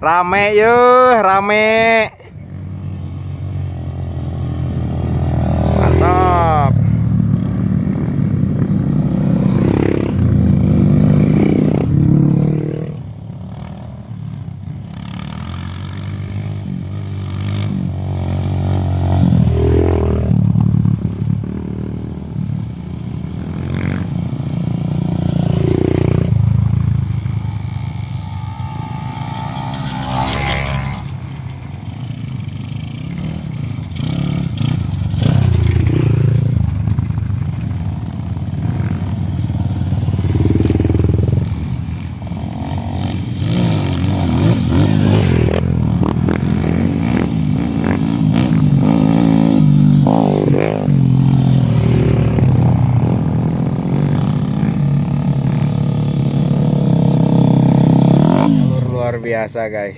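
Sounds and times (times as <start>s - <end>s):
motorcycle engines revving: 0.0s - 59.9s.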